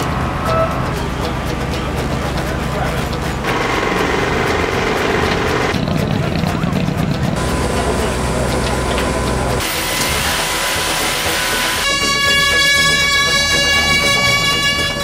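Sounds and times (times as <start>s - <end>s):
vehicle noise: 0.0s - 15.0s.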